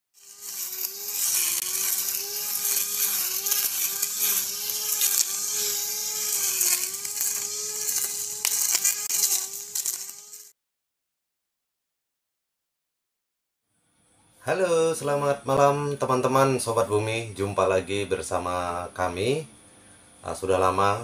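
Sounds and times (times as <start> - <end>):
brush cutter motor whine: 0.2 - 10.5.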